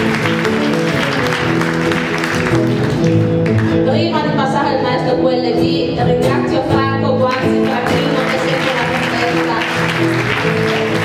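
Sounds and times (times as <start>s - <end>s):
guitars: 0.0s - 11.0s.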